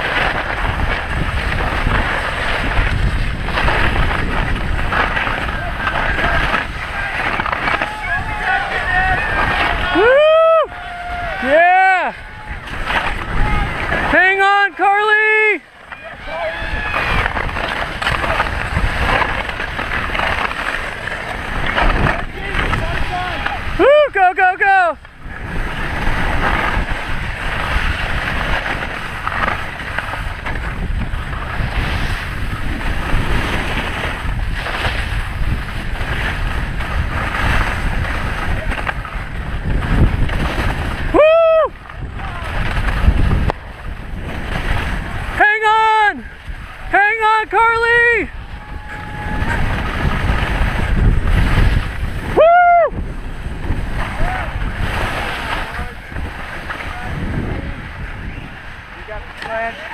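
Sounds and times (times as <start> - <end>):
skis scraping on snow: 0.0 - 59.9
wind rushing over microphone: 0.0 - 59.9.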